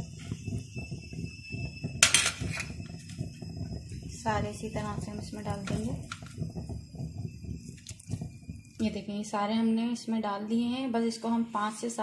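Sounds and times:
sudden loud kitchen noise: 0.0s - 9.4s.

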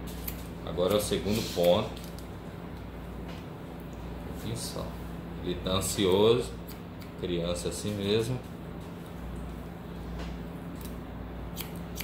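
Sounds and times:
steady low hum: 0.0s - 12.0s
scissors snipping hair: 10.8s - 12.0s.

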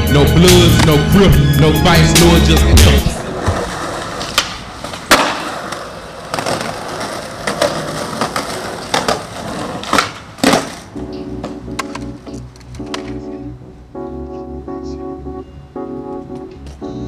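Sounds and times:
organ-like keyboard music: 0.0s - 3.5s, 10.9s - 17.0s
skateboard wheels rolling on concrete: 0.3s - 17.0s
skateboard clacks and knocks: 3.3s - 13.2s.

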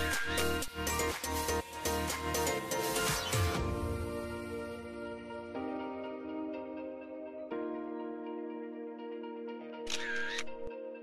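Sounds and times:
gentle instrumental music: 0.0s - 11.0s
camera shutter sound effect: 9.9s - 10.7s.

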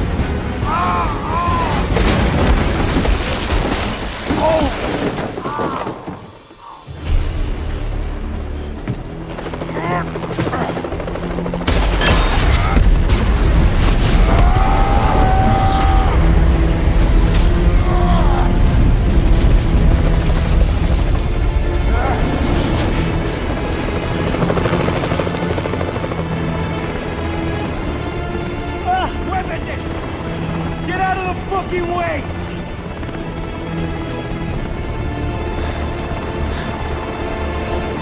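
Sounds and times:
helicopter rotor and engine: 0.0s - 2.0s, 7.2s - 14.1s, 15.3s - 38.0s
dramatic music score: 0.0s - 38.0s.

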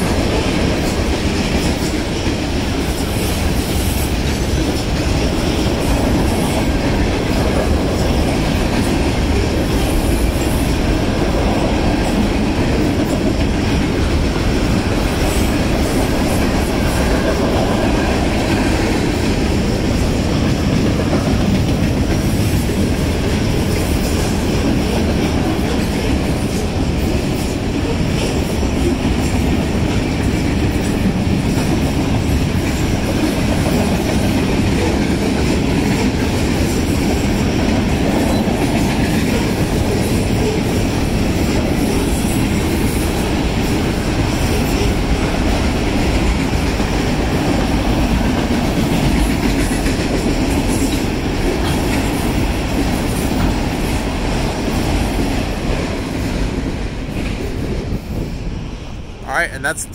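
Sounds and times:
freight train rolling past: 0.0s - 59.9s.

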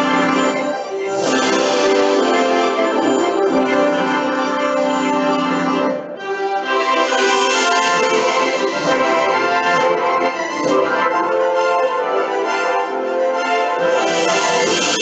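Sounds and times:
orchestral fanfare: 0.0s - 15.0s.

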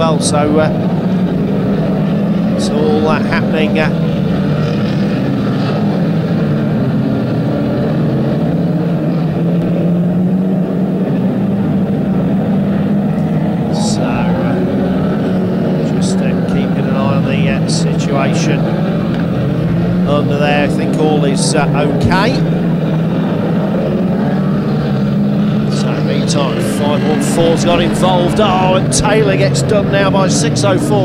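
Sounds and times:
racing car engines revving: 0.0s - 31.0s.

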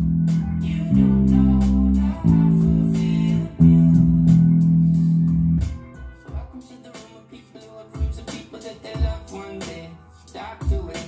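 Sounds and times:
electric bass guitar notes: 0.0s - 6.0s.

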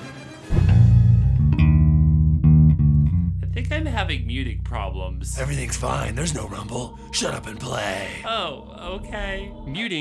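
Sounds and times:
electric bass plucked notes: 0.5s - 6.6s.

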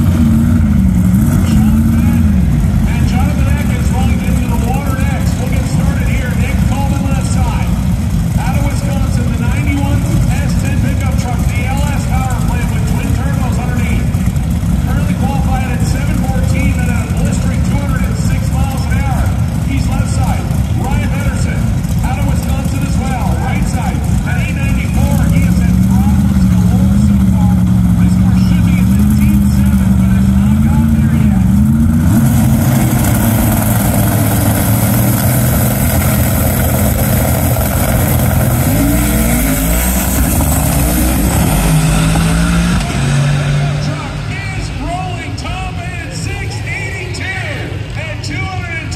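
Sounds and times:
indistinct voices: 0.0s - 14.0s, 14.8s - 48.9s
drag car engine revving: 0.0s - 48.0s
drag car full-throttle run: 0.0s - 48.9s.

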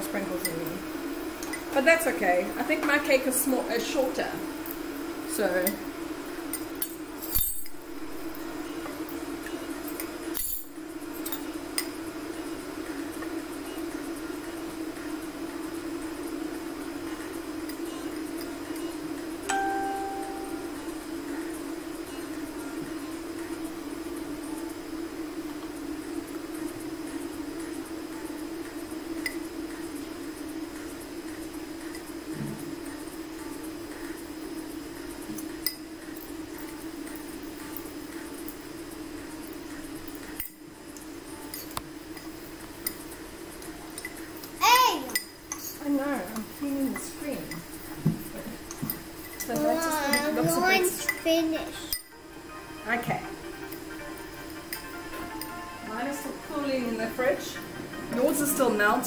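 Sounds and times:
steady low hum: 0.0s - 51.2s, 51.8s - 59.0s.

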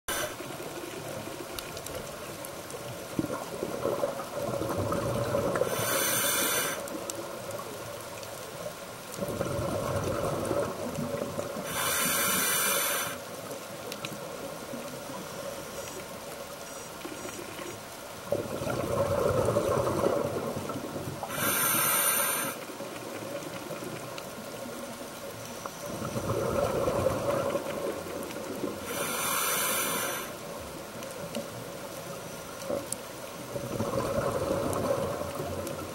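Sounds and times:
loud hiss: 0.1s - 0.6s, 5.6s - 6.9s, 11.6s - 13.2s, 21.3s - 22.6s, 28.8s - 30.4s
underwater regulator breathing bubbles: 11.6s - 13.2s, 21.2s - 22.6s.

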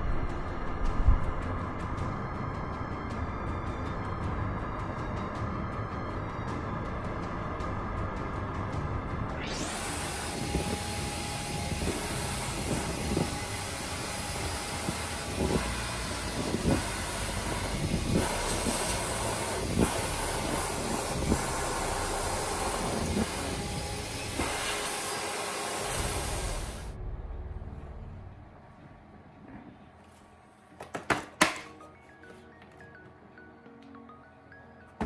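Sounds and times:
vacuum cleaner suction hiss: 9.4s - 26.9s.

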